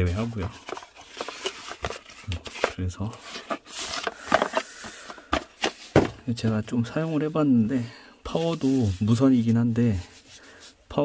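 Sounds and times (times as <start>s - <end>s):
cardboard box rustling scrape: 0.0s - 6.2s.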